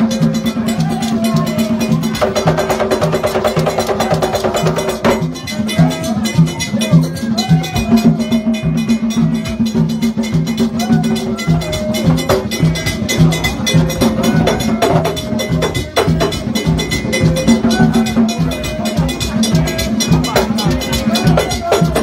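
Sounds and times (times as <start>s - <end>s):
fast drumming: 0.0s - 22.0s
people singing: 0.0s - 22.0s.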